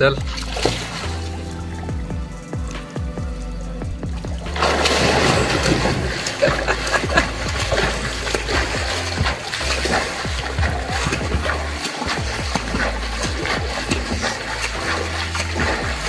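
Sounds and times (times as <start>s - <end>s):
background music with deep bass: 0.0s - 16.0s
swimmer splashing water: 0.0s - 16.0s.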